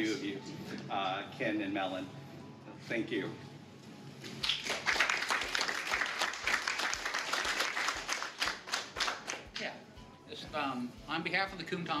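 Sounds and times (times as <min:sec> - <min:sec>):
people applauding: 0:04.4 - 0:09.6.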